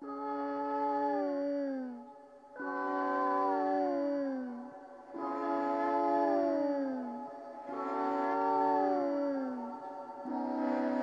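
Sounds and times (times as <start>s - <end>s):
long howling tones: 0.0s - 11.0s.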